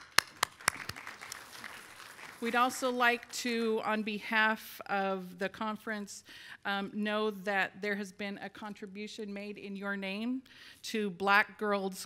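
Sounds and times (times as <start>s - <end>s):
hands clapping close: 0.0s - 2.5s
room applause: 0.0s - 3.4s.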